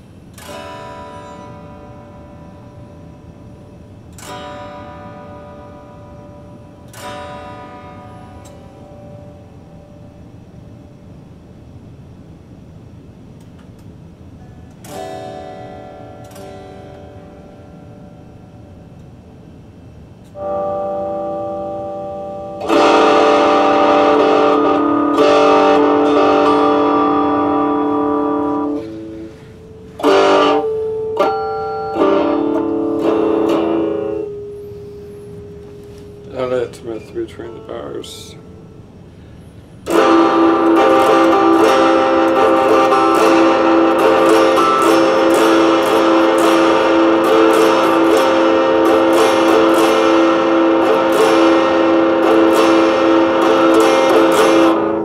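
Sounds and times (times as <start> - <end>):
electric guitar chords: 0.0 - 55.0.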